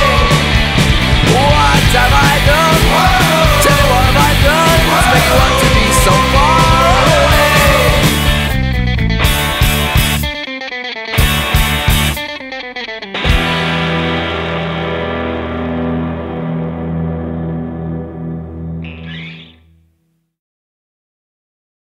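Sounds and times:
rock band playing: 0.0s - 19.6s
electric guitar and bass chord: 0.0s - 20.0s.

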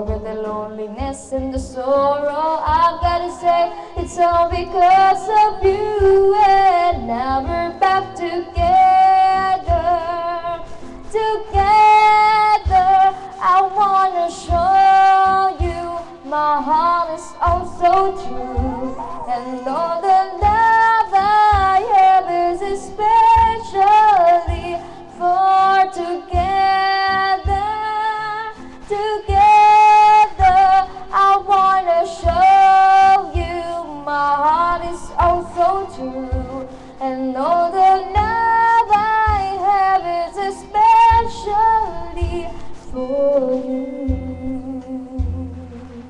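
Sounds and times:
music with low beat: 0.0s - 46.0s
pop song backing track: 0.0s - 46.0s
woman singing: 0.0s - 46.0s
person humming a held note: 18.0s - 20.3s.

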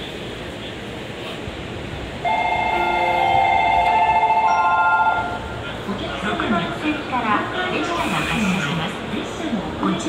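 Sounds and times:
electronic departure bell ringing: 2.3s - 5.6s.

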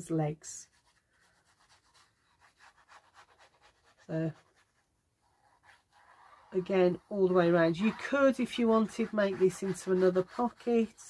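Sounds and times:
glue bottle nozzle scratching paper: 0.7s - 11.0s.

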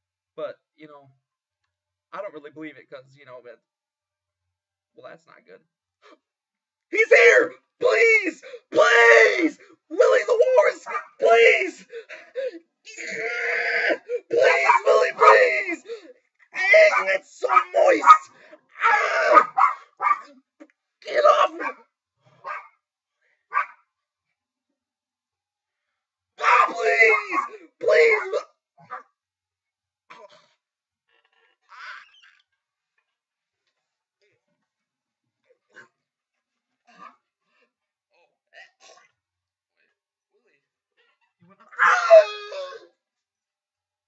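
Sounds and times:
man wailing and yelping: 7.0s - 19.8s, 21.0s - 21.8s, 26.4s - 28.4s, 41.7s - 42.9s
man gasping and grunting: 8.4s - 10.1s, 10.9s - 19.5s, 26.4s - 27.8s.

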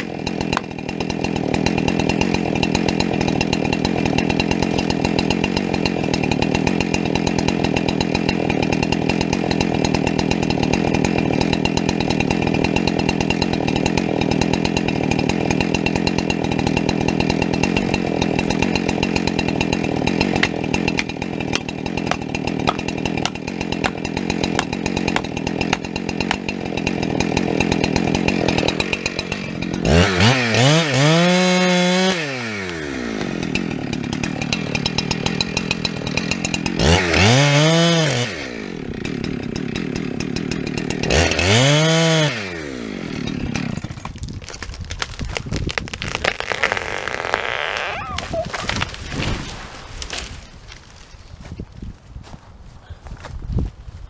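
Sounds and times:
chainsaw engine revving: 0.0s - 44.2s, 45.8s - 50.4s.

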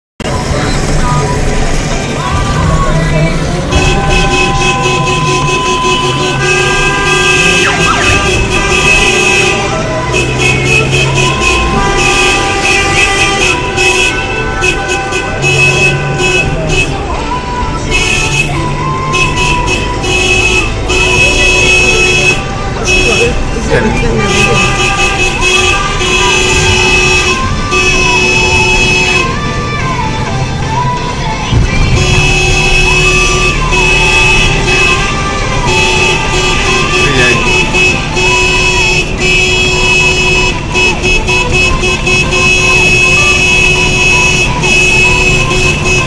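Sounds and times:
car horns honking: 0.2s - 30.0s, 30.6s - 46.0s
traffic noise: 0.2s - 46.0s.

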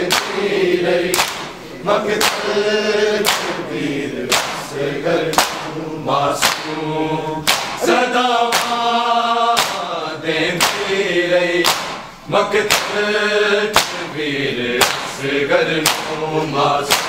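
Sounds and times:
men chanting in unison: 0.0s - 17.0s
hands slapping chests: 0.1s - 0.5s, 1.1s - 1.6s, 2.2s - 2.5s, 3.2s - 3.6s, 4.3s - 4.7s, 5.3s - 5.8s, 6.4s - 6.8s, 7.4s - 7.9s, 8.5s - 8.8s, 9.6s - 9.9s, 10.6s - 10.9s, 11.6s - 12.1s, 12.7s - 13.0s, 13.7s - 14.0s, 14.8s - 15.2s, 15.8s - 16.2s.

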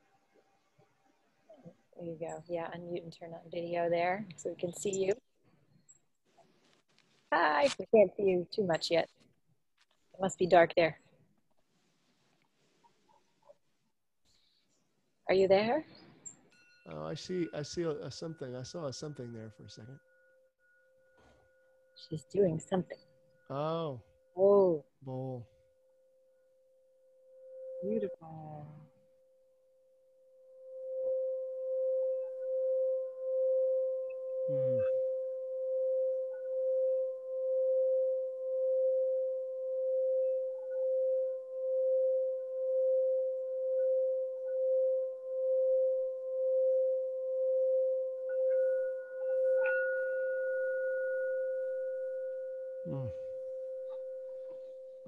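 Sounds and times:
singing bowl tone: 2.0s - 5.2s, 15.3s - 55.0s.

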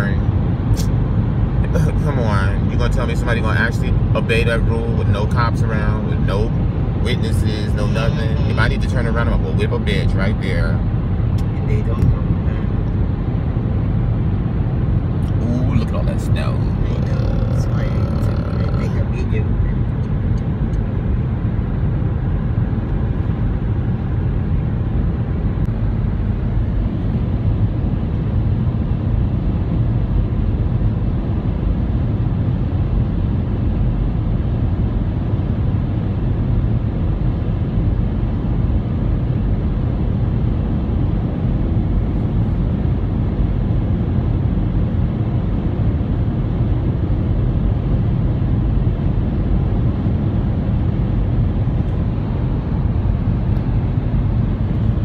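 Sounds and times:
car road and engine rumble: 0.0s - 55.0s.

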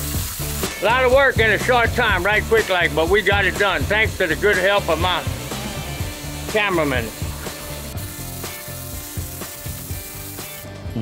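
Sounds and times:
water spraying from a hose: 0.0s - 10.7s
background music: 0.0s - 11.0s.

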